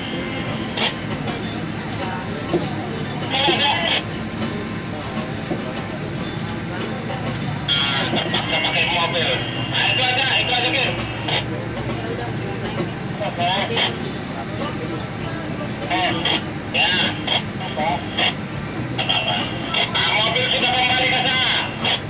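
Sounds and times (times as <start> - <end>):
bus engine and road noise: 0.0 - 22.0
indistinct voices: 0.0 - 22.0.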